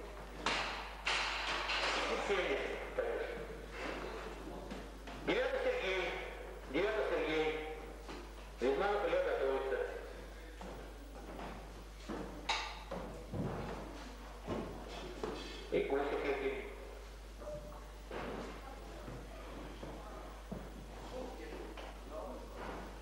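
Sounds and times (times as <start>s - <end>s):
men talking: 1.9s - 10.7s.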